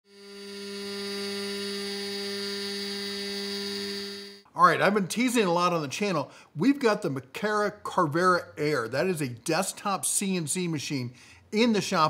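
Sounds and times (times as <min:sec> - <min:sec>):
cnc machine whine: 0:00.1 - 0:04.4.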